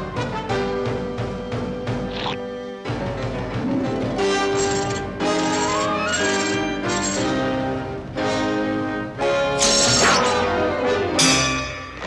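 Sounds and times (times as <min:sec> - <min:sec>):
held string chords: 0:03.0 - 0:06.2
rising run of orchestral notes: 0:03.5 - 0:04.5.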